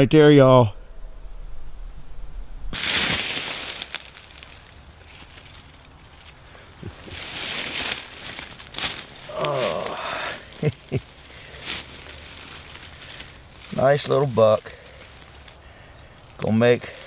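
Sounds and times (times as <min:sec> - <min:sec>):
footsteps crunching dry leaves: 0:02.7 - 0:17.0.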